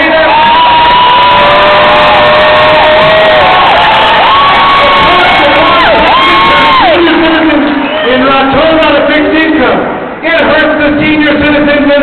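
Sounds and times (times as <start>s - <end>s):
audience cheering: 0.0s - 8.6s
long held whoops: 0.3s - 7.1s.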